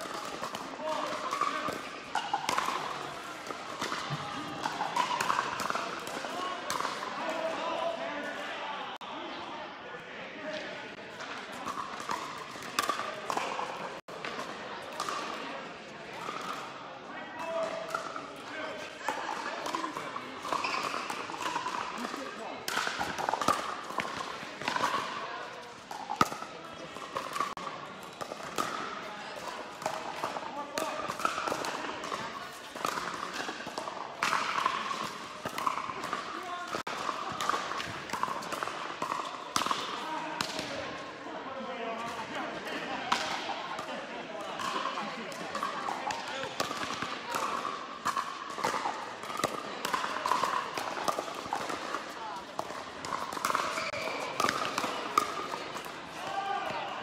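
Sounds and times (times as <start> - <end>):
ball bouncing on court: 0.0 - 7.0, 19.1 - 25.1, 25.9 - 40.7, 45.5 - 56.8.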